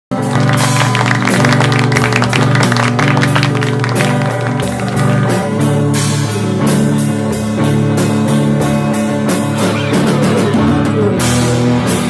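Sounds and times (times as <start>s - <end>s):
electric guitar chords: 0.1s - 12.0s
rock band playing loudly: 0.1s - 12.0s
drum kit and cymbals: 3.9s - 12.0s.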